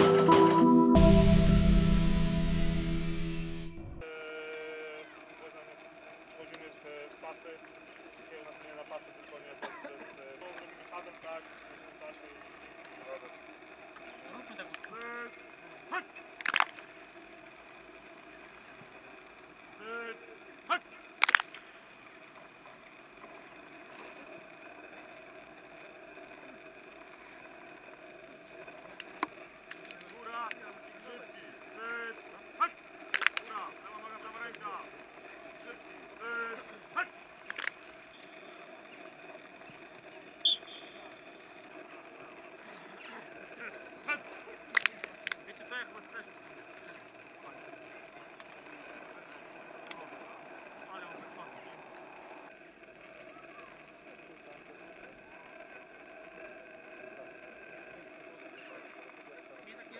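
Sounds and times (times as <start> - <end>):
steady background hum: 0.0 - 59.9
sharp slap or clap: 21.2 - 21.6.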